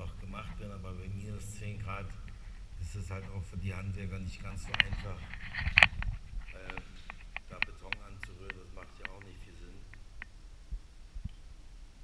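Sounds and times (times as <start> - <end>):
faint clicks: 5.6 - 10.4.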